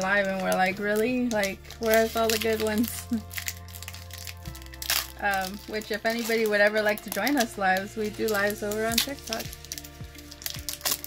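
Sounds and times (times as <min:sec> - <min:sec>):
background music with low notes: 0:00.0 - 0:11.0
foil wrappers crinkling: 0:00.0 - 0:11.0.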